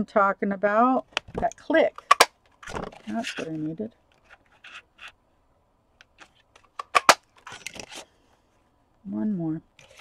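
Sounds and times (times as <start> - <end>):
card rustling: 1.2 - 5.2, 6.0 - 8.1.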